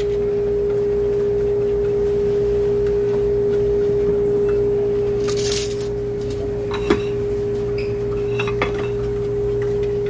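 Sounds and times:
steady single-pitched hum: 0.0s - 10.0s.

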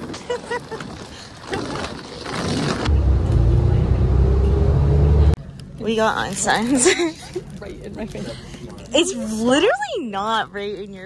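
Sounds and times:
bus engine rumble: 0.0s - 9.8s
outdoor background noise: 0.0s - 11.0s.

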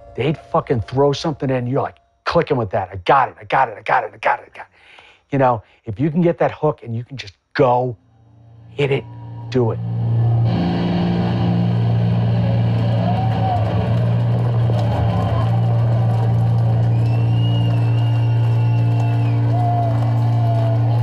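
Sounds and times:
sustained low guitar chord: 8.4s - 21.0s.

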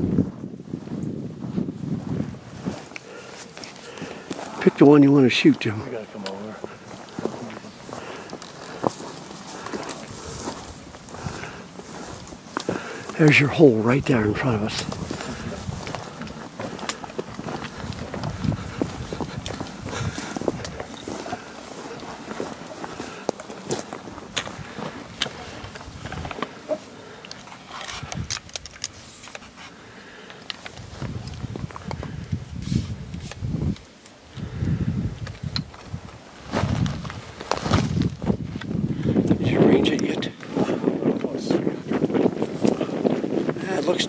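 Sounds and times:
footsteps on rocky ground: 0.0s - 44.0s.

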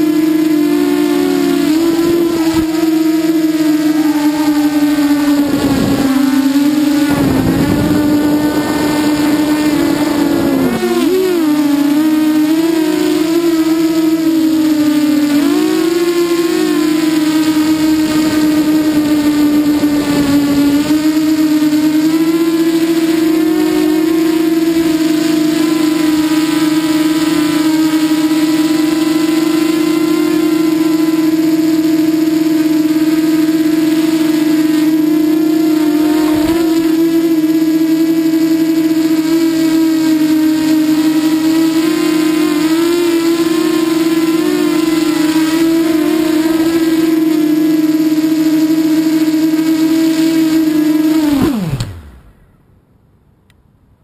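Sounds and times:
rushes of air noise: 0.0s - 13.0s, 33.6s - 39.2s
quadcopter motors whining: 0.0s - 52.7s.

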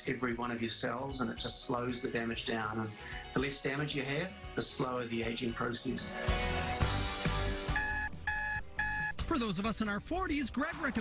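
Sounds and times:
background music: 0.0s - 11.0s
alarm clock beeping: 7.7s - 9.2s.

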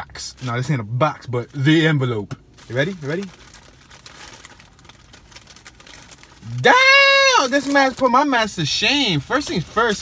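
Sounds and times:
envelope rustling and crinkling: 2.5s - 6.7s.

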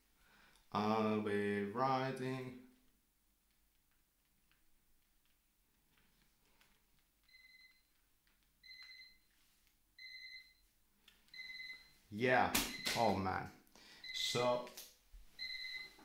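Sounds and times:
electronic alarm beeping: 7.3s - 7.9s, 8.6s - 9.3s, 10.0s - 10.6s, 11.3s - 12.0s, 12.7s - 13.1s, 14.0s - 14.6s, 15.4s - 16.0s.

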